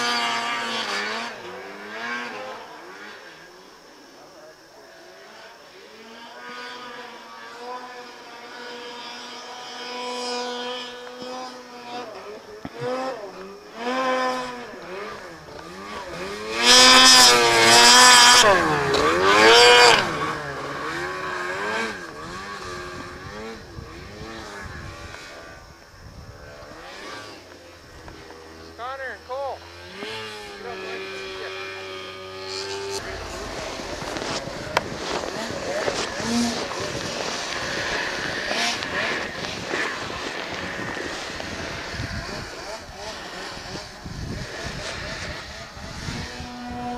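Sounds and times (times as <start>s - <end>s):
snowmobile engine revving: 0.0s - 46.9s.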